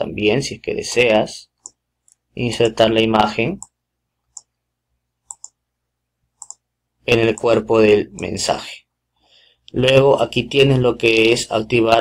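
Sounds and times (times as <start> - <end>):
computer mouse clicks: 0.9 - 2.8, 3.6 - 4.6, 5.2 - 5.6, 6.4 - 6.6, 7.3 - 8.4.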